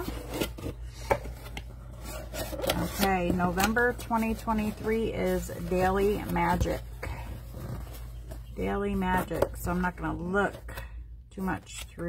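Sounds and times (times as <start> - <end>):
cardboard lid scraping: 0.0 - 9.6.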